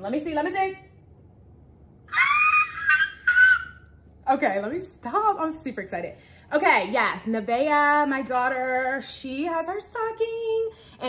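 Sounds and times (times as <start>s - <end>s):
woman squealing: 2.1s - 3.9s.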